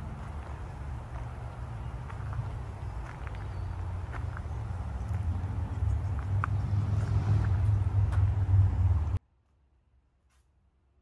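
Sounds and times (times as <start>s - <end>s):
low outdoor rumble: 0.0s - 9.2s.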